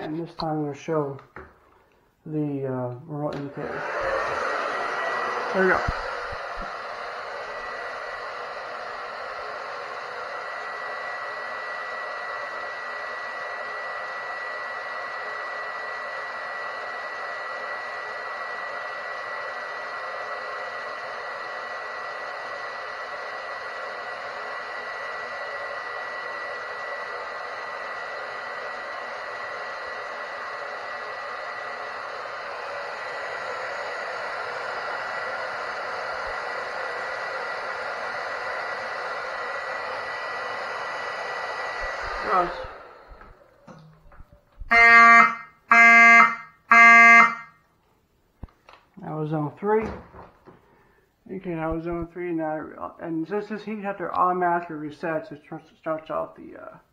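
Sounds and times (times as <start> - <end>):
hair dryer running: 2.4 - 47.5.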